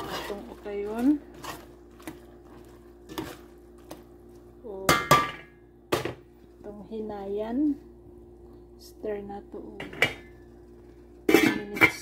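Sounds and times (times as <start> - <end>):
utensil stirring pasta in pot: 0.0 - 4.9.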